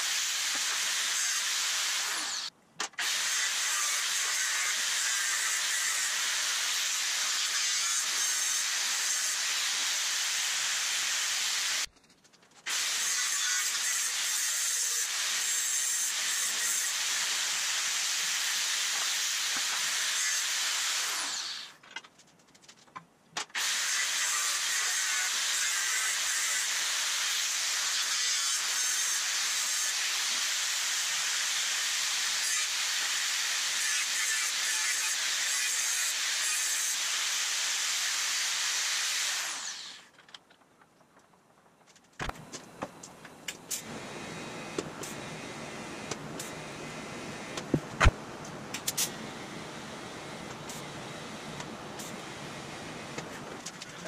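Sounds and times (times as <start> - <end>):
angle grinder cutting steel: 0.0 - 11.9, 12.7 - 21.8, 23.6 - 40.1.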